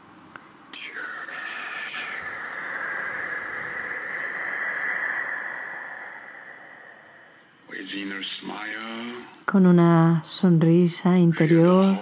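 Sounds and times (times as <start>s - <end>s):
long slow hissing breath: 0.9s - 7.6s.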